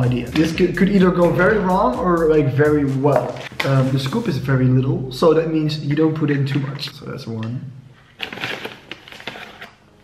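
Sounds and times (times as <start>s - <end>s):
plastic pouch crinkling: 8.0s - 10.0s.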